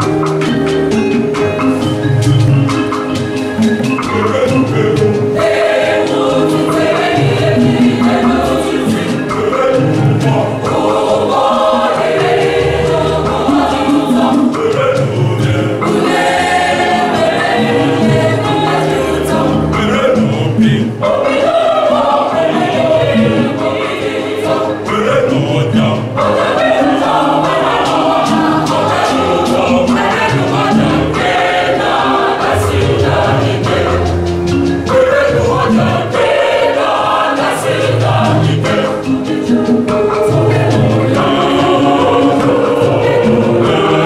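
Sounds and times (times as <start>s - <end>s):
mixed choir singing in harmony: 0.0s - 44.0s.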